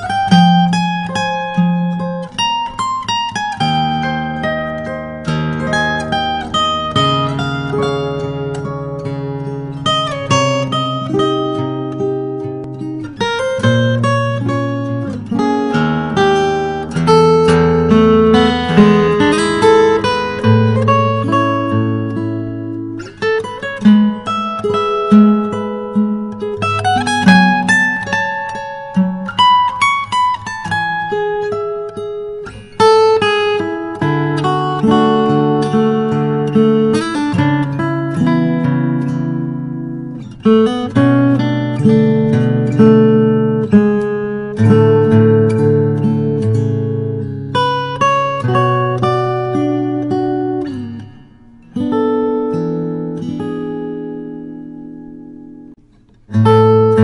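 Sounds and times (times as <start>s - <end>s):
fingerstyle acoustic guitar: 0.0s - 57.0s.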